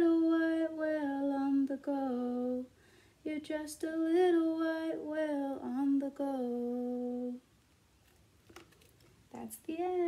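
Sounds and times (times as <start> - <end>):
woman singing unaccompanied: 0.0 - 7.5, 9.3 - 10.0.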